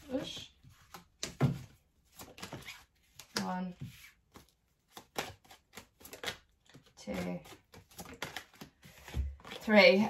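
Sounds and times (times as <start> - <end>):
cards being shuffled: 0.3 - 9.7.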